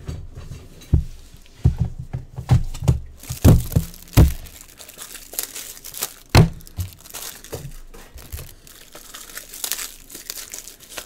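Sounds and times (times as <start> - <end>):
card packaging crinkling and tearing: 3.2 - 11.0.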